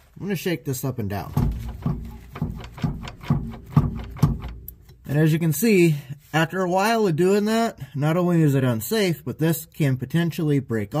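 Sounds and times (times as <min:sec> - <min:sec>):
ball joint clunking: 0:01.3 - 0:05.0.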